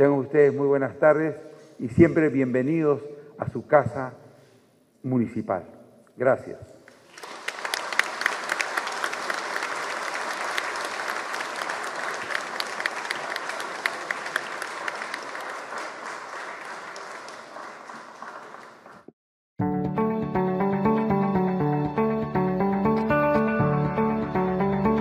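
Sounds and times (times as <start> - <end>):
audience applauding: 7.0 - 19.1.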